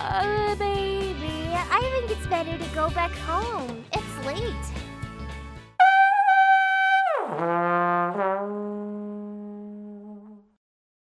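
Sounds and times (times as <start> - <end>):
comic sliding horn note: 5.8 - 10.6.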